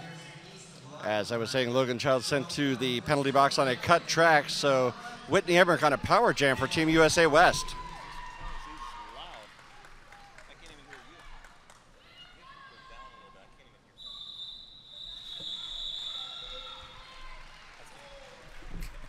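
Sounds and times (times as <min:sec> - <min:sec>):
crowd chatter: 0:00.0 - 0:07.8
referee's whistle: 0:14.0 - 0:17.0.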